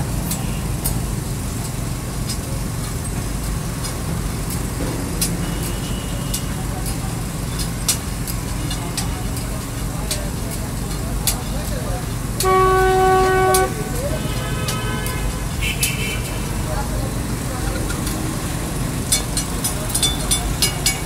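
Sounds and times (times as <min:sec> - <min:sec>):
street traffic: 0:00.0 - 0:21.0
sharp clicks and knocks: 0:01.6 - 0:11.7, 0:17.6 - 0:21.0
vehicle horn honking: 0:05.2 - 0:06.7, 0:12.4 - 0:16.6.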